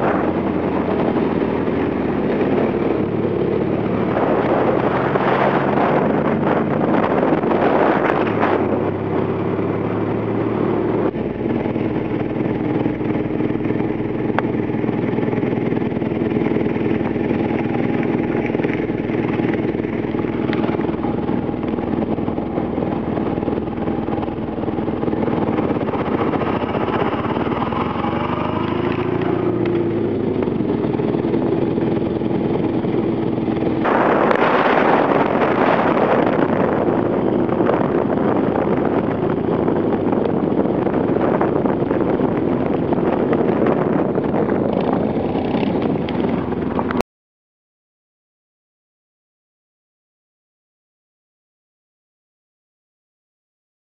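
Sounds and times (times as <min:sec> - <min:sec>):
small car engine running: 0:00.0 - 0:47.0.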